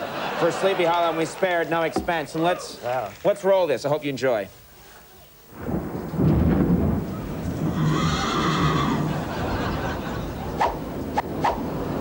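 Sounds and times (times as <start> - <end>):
horse neighing: 7.7 - 9.2
steady low rumble: 9.0 - 12.0.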